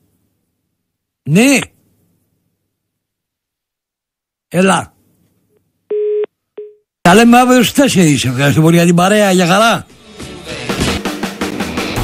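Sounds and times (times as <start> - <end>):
telephone busy tone beeps: 5.9 - 6.8.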